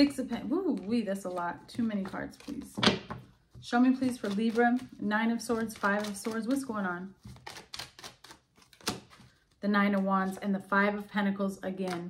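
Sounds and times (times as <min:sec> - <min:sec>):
cards shuffled by hand: 0:00.2 - 0:03.3, 0:03.9 - 0:09.6.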